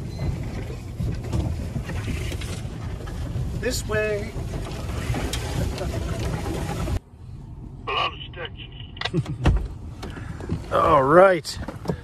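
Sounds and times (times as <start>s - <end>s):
engine and tyre rumble: 0.0s - 12.0s.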